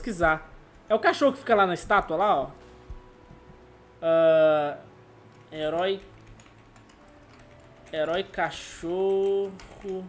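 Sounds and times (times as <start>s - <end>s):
keyboard clicking: 5.3s - 10.0s.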